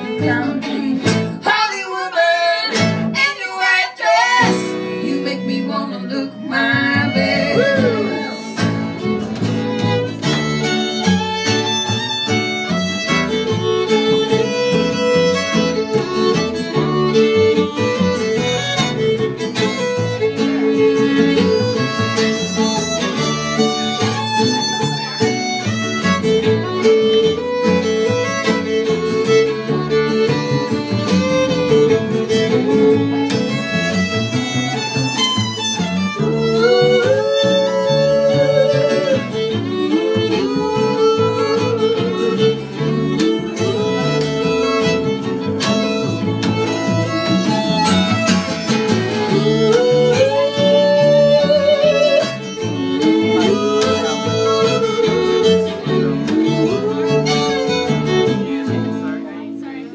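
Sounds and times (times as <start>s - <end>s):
fiddle melody: 0.0s - 59.9s
strummed acoustic guitar: 0.0s - 59.9s
upright bass: 0.0s - 59.9s.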